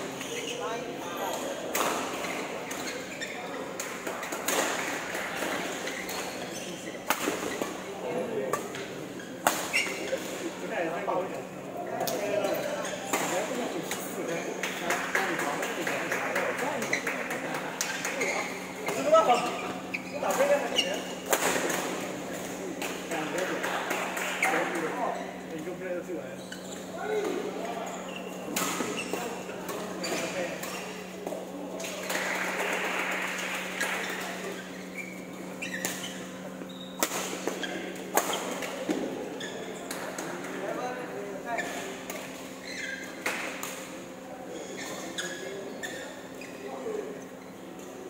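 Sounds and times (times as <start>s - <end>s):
voices chattering: 0.0s - 48.0s.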